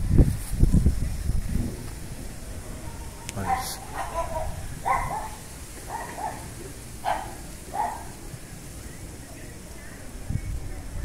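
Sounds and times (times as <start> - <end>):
dog barking: 3.4 - 8.2.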